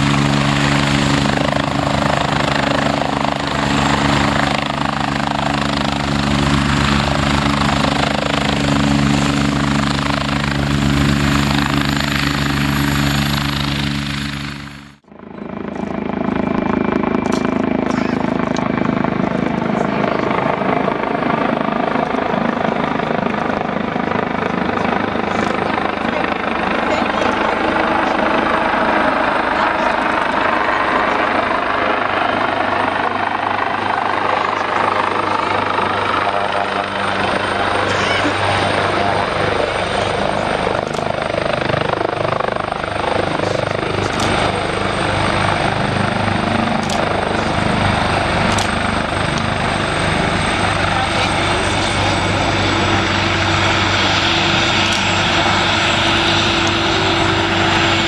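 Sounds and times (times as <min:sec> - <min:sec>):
jet engines whine and rumble: 0:00.0 - 0:58.0.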